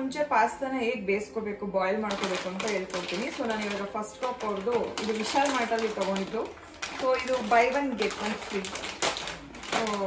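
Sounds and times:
woman talking: 0:00.0 - 0:09.1, 0:09.7 - 0:10.0
plastic snack packet crinkling: 0:02.0 - 0:10.0.

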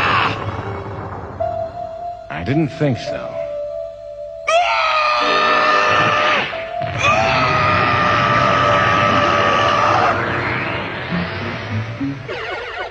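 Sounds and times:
cartoon monster screaming: 0:00.0 - 0:00.5, 0:04.5 - 0:10.4
background music: 0:00.0 - 0:12.9.

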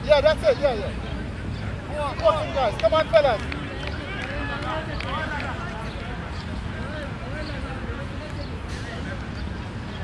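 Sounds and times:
players calling out: 0:00.0 - 0:09.2
low background noise: 0:00.0 - 0:10.0.

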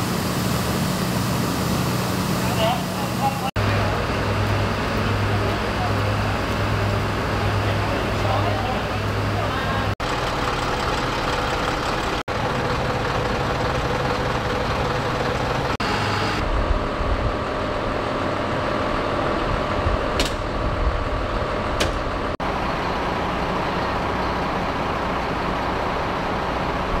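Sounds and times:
fire engines running: 0:00.0 - 0:27.0.

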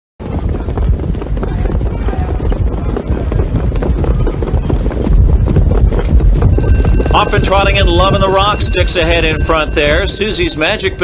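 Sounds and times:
low rumble: 0:00.2 - 0:10.6
hooves clattering on track: 0:00.2 - 0:11.0.

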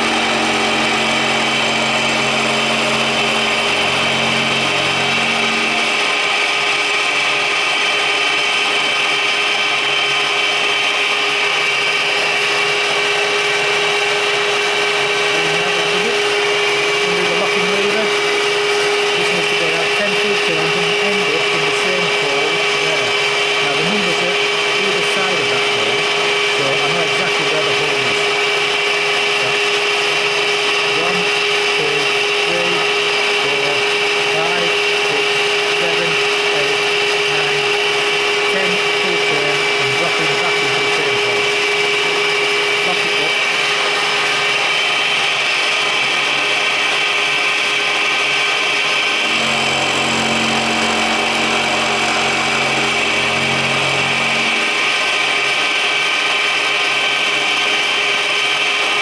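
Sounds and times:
milling machine whining: 0:00.0 - 0:59.0.

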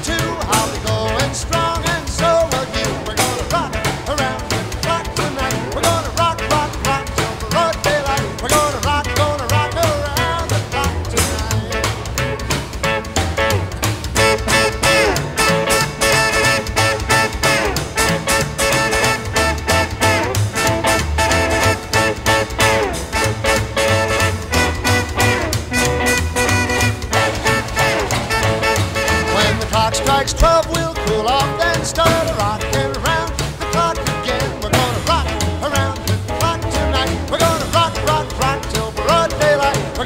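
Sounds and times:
instrumental rock and roll music: 0:00.0 - 0:40.0.

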